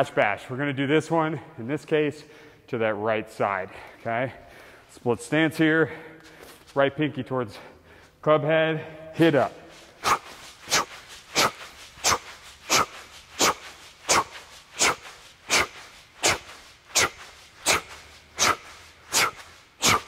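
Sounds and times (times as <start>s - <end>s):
sharp forceful exhalations: 9.4s - 20.0s.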